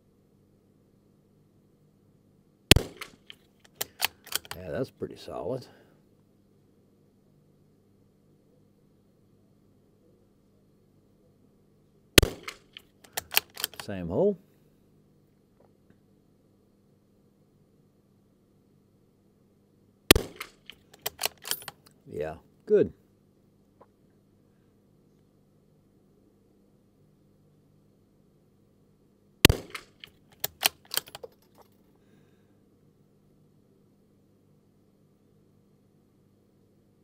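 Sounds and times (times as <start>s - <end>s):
rifle bolt clicks: 2.7s - 4.6s, 12.2s - 13.9s, 20.1s - 22.0s, 29.5s - 31.7s
rifle shot: 2.7s - 4.6s, 12.2s - 13.8s, 20.1s - 21.6s, 29.4s - 31.0s.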